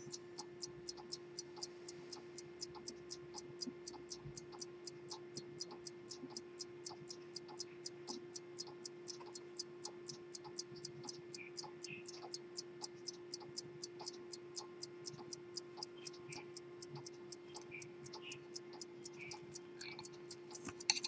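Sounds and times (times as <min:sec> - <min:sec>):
pocket watch ticking: 0:00.0 - 0:21.0.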